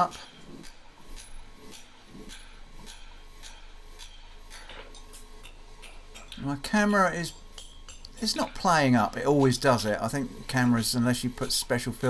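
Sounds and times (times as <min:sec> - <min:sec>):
hammer striking steel on anvil: 0:00.0 - 0:09.7.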